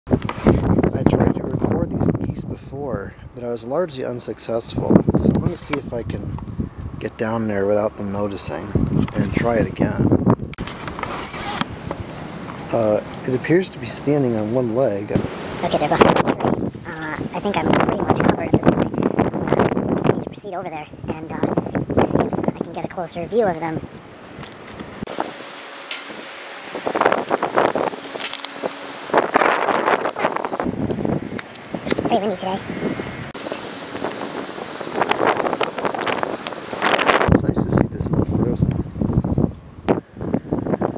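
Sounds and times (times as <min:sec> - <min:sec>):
wind rushing over microphone: 0:00.1 - 0:40.9
person speaking: 0:12.7 - 0:23.9, 0:31.9 - 0:32.7.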